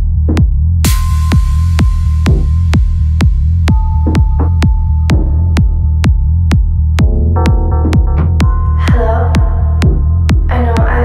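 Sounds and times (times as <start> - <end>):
deep kick drum: 0.0 - 11.0
throbbing bassline: 0.0 - 11.0
short percussion hits: 0.8 - 8.9.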